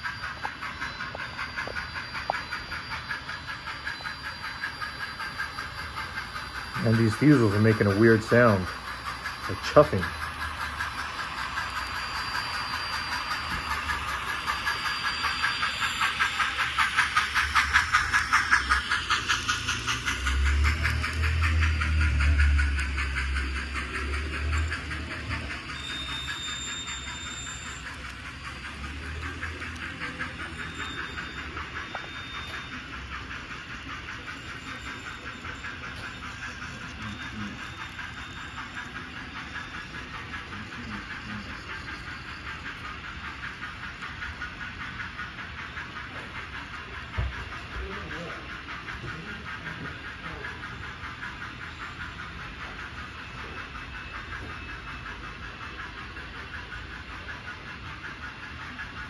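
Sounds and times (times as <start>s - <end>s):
model freight cars rolling: 0.0s - 59.0s
model locomotives chuffing and hissing: 0.0s - 59.0s.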